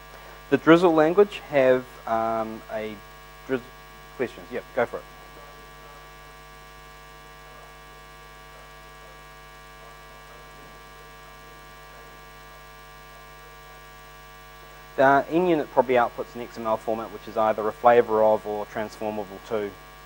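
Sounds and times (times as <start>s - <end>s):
electrical mains hum: 0.0s - 20.0s.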